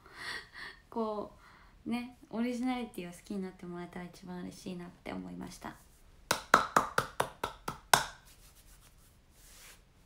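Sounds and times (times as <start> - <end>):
hand claps: 6.3 - 8.2.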